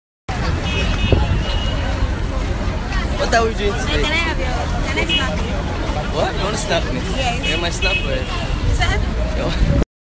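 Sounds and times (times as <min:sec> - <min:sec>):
children chattering: 0:00.3 - 0:09.6
traffic noise: 0:00.3 - 0:09.8.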